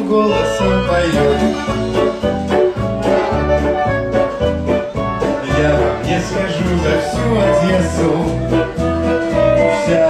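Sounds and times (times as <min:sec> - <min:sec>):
instrumental band music: 0:00.0 - 0:10.0.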